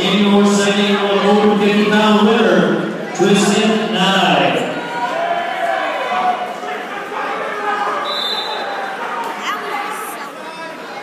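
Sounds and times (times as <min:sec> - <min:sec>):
echoing crowd chatter: 0:00.0 - 0:11.0.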